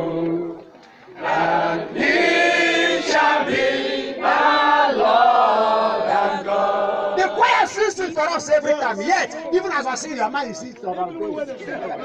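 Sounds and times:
congregation singing: 0.0s - 10.4s.

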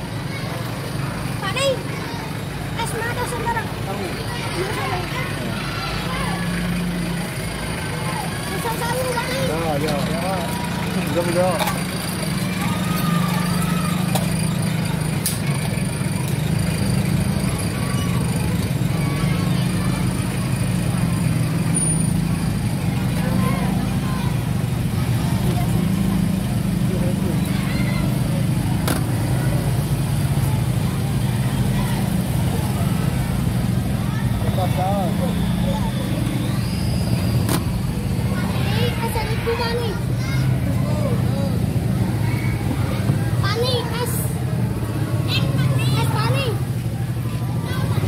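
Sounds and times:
children chattering: 0.0s - 48.0s.

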